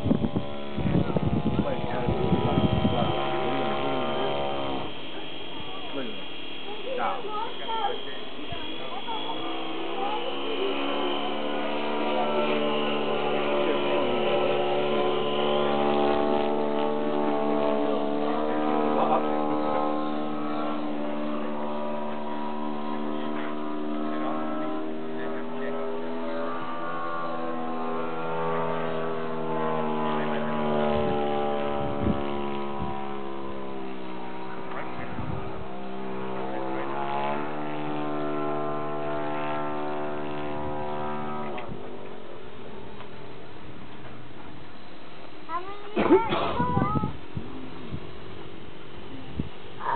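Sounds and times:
model airplane motor droning: 0:00.0 - 0:49.9.

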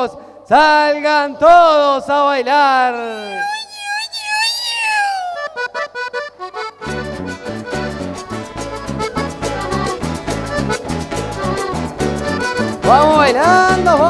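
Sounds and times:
accordion with sliding notes: 0:05.4 - 0:14.0
band with bass and dance beat: 0:06.8 - 0:14.0.

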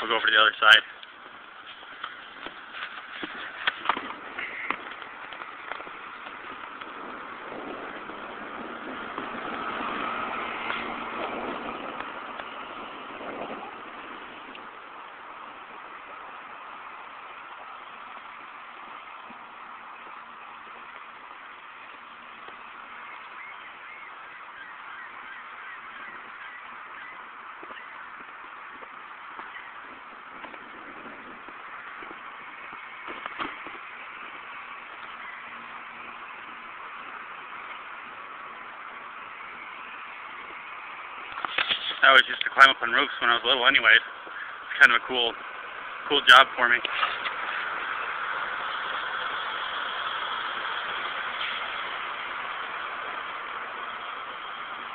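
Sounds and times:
distant street traffic: 0:00.0 - 0:54.9.

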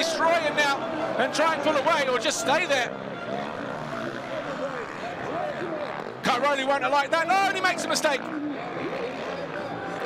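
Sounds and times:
motocross engines revving: 0:00.0 - 0:10.0.

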